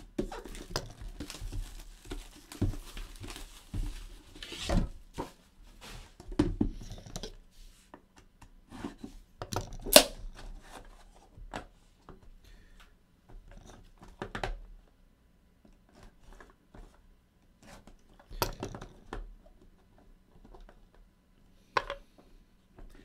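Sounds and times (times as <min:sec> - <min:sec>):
cardboard scraping: 0:00.2 - 0:06.2
plastic wrapping rustling: 0:00.2 - 0:06.2
wrapping tearing: 0:00.4 - 0:04.3.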